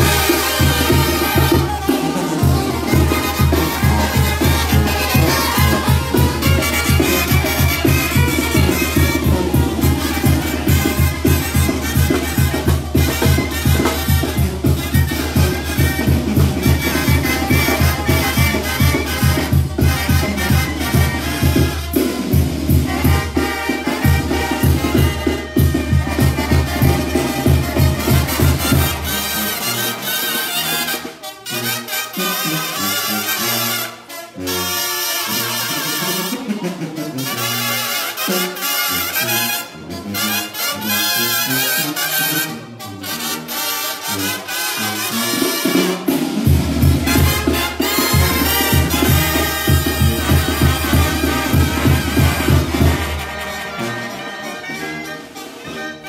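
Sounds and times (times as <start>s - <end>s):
brass band playing: 0.0s - 56.0s.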